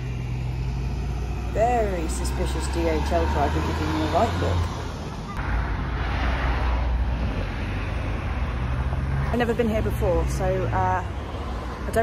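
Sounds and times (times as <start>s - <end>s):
low traffic rumble: 0.0s - 12.0s
vehicle passing: 0.0s - 12.0s.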